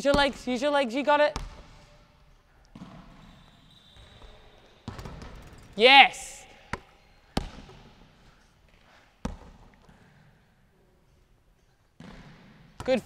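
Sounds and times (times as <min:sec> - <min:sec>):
basketball thuds echoing: 0:01.3 - 0:02.0, 0:02.7 - 0:03.3, 0:04.0 - 0:05.6, 0:06.5 - 0:08.1, 0:09.2 - 0:09.7, 0:12.0 - 0:13.0.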